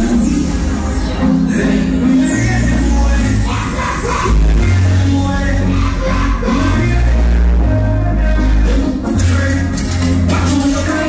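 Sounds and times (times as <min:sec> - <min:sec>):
heavy bass line: 0:00.0 - 0:11.0
loud party music: 0:00.0 - 0:11.0.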